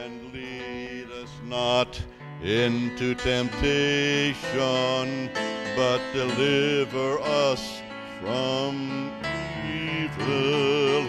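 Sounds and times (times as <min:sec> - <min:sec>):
grand piano accompaniment: 0:00.0 - 0:11.0
man singing into microphone: 0:00.0 - 0:11.0.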